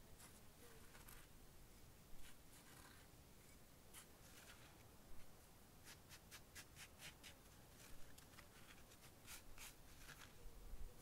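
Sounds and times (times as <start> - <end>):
hands scraping dry earth: 2.2 - 10.4.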